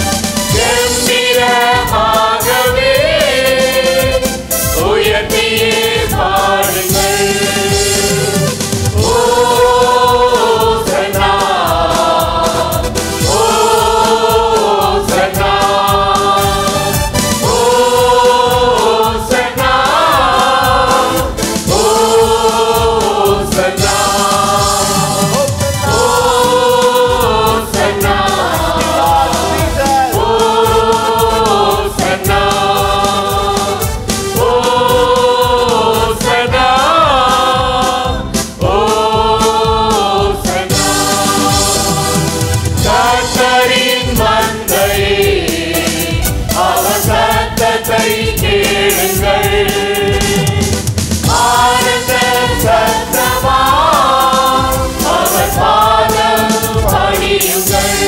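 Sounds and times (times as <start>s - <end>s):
group singing worship song: 0.0s - 58.0s
instrumental accompaniment: 0.0s - 58.0s.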